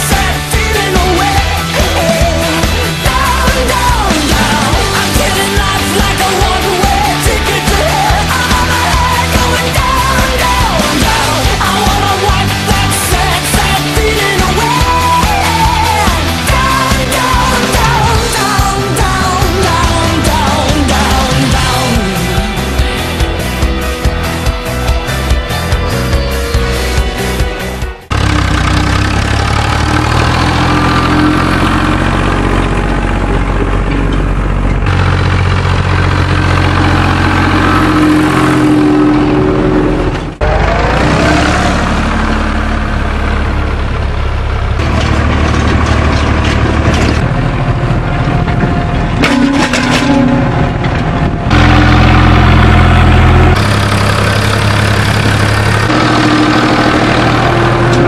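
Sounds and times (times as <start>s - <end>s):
tractor diesel engine: 0.0s - 58.0s.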